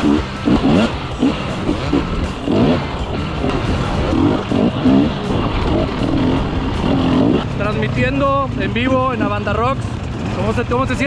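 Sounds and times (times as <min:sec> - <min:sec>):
dirt bike engine revving: 0:00.0 - 0:11.0
wind: 0:00.0 - 0:11.0.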